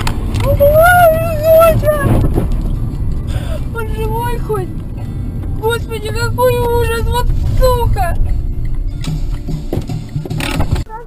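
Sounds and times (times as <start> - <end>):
car rumbling on highway: 0.0 - 11.0.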